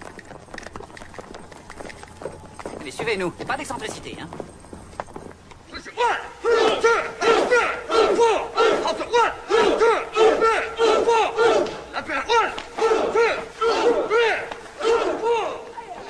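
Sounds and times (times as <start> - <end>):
men shouting battle cries: 5.7 - 16.0.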